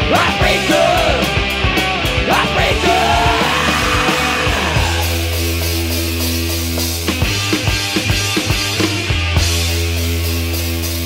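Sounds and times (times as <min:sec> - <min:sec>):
high sliding guitar line: 0:00.0 - 0:11.0
live rock band playing: 0:00.0 - 0:11.0.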